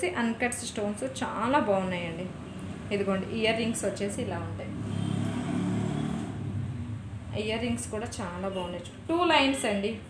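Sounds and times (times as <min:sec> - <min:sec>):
motor vehicle engine passing: 0:04.5 - 0:07.4.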